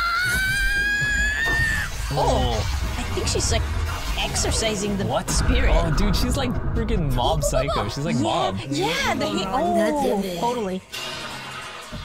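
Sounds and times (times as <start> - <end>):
high-pitched cartoon scream: 0.0 - 2.0
low rumble: 2.0 - 9.2.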